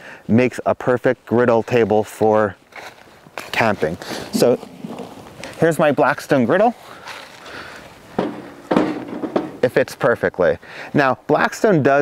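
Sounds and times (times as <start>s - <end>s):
footsteps: 1.6s - 9.8s
handling rustle: 1.6s - 9.8s
griddle clunking onto table: 8.2s - 9.7s.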